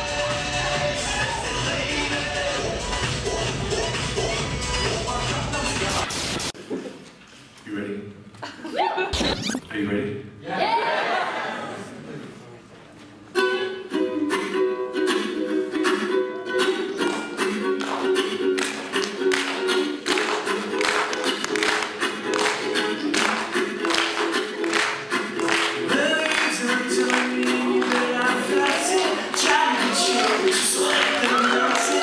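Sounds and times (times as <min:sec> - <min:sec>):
ukulele strumming: 0:13.3 - 0:32.0.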